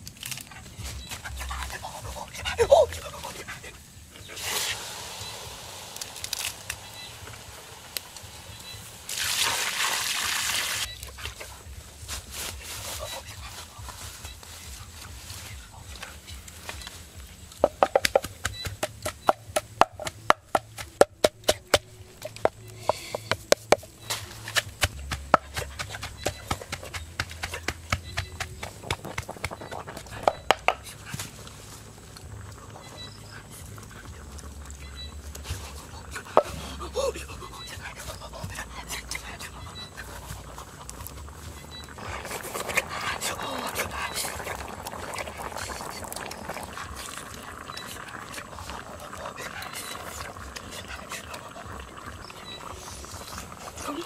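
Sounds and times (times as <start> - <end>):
frying pops and crackles: 0.0 - 54.0
pork frying hiss: 0.0 - 54.0.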